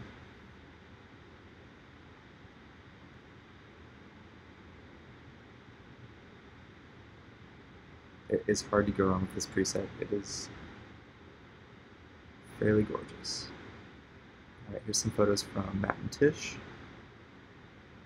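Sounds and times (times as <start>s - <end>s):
faint steady hiss: 0.0s - 18.0s.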